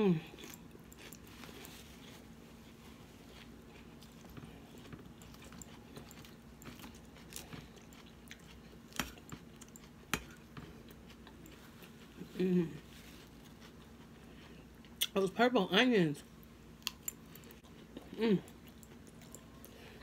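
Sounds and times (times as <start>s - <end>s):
person chewing lettuce: 0.1s - 15.2s, 16.8s - 20.0s.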